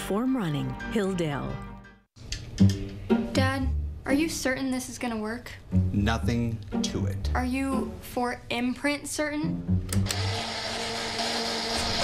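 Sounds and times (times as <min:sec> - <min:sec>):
small electric motor whirring: 0:10.0 - 0:12.0.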